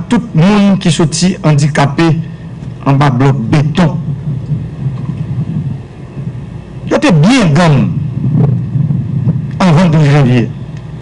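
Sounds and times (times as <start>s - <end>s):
low uneven rumbling: 0.0s - 11.0s.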